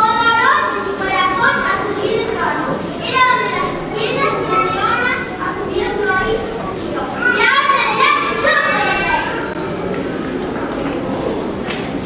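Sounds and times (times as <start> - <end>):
children talking and calling out: 0.0 - 11.6.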